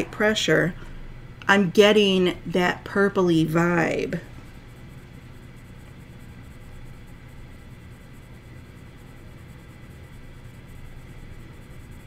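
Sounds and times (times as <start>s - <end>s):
steady low hum: 0.0s - 12.0s
colored pencil scratching on paper: 1.6s - 12.0s.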